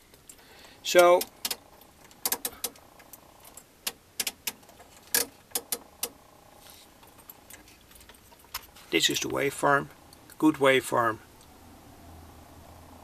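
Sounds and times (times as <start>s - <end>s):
control knobs clicking: 0.2s - 6.2s.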